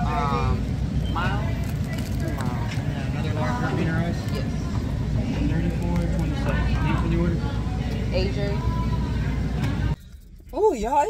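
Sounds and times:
indistinct voices talking: 0:00.0 - 0:11.0
steady low background hum: 0:00.0 - 0:11.0.

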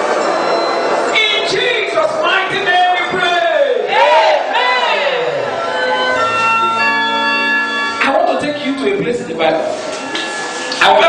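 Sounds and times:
congregation praying aloud: 0:01.1 - 0:05.6.

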